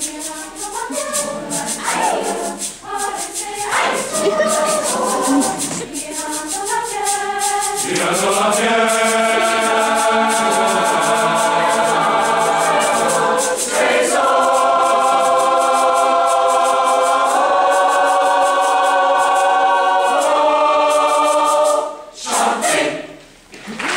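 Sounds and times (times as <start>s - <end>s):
mixed choir singing held chords: 0.0s - 23.2s.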